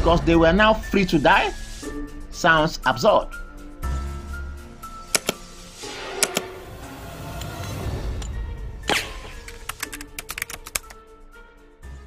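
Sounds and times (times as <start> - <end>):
soft background music: 0.0 - 12.0
keyboard typing clicks: 5.1 - 5.4, 6.2 - 6.5, 9.4 - 11.0.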